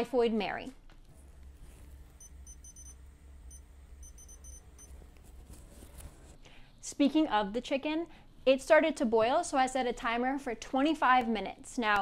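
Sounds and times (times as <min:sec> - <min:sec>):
faint low hum: 0:00.8 - 0:08.2
short high electronic beeps: 0:02.2 - 0:04.9.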